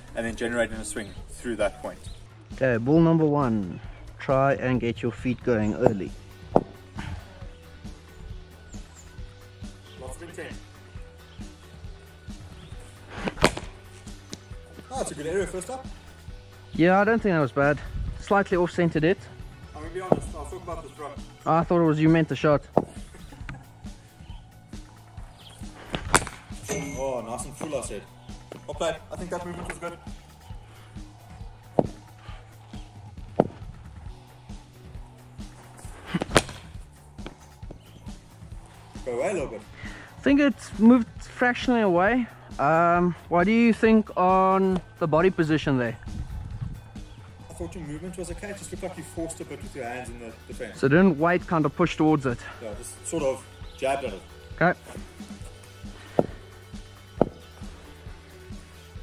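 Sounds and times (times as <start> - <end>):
background music with low hum: 0.0 - 59.0
cricket bat striking ball: 25.9 - 26.5, 31.7 - 32.0, 33.3 - 33.7, 36.2 - 37.8, 57.2 - 57.4.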